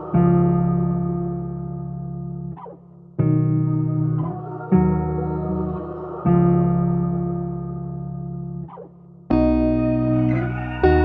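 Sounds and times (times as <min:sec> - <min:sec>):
instrumental beat with guitar chords: 0:00.0 - 0:05.2, 0:06.2 - 0:11.0.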